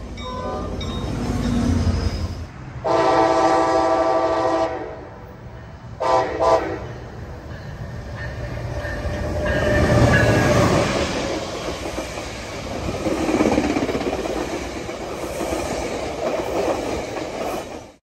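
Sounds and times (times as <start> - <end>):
diesel locomotive engine rumble: 0.0 - 18.0
train wheels clattering on rails: 5.3 - 18.0.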